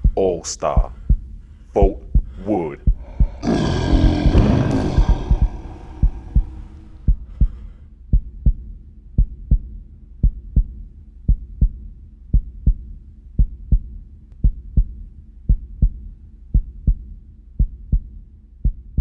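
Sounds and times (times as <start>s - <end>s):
heartbeat thumps: 0.0s - 19.0s
man roaring: 3.0s - 7.1s.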